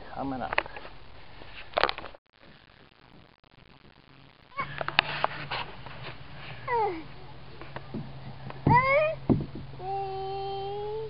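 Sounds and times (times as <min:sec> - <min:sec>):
sharp knocks: 0:07.9 - 0:09.8.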